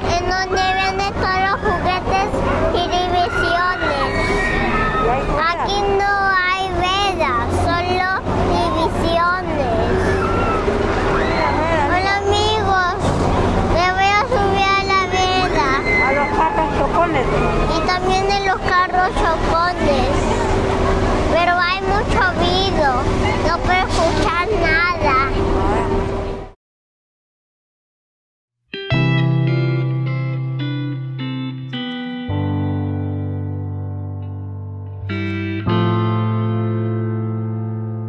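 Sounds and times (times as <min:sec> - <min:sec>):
young boy talking: 0:00.0 - 0:04.4, 0:05.1 - 0:10.1, 0:11.6 - 0:16.5, 0:17.7 - 0:20.4, 0:21.3 - 0:26.0.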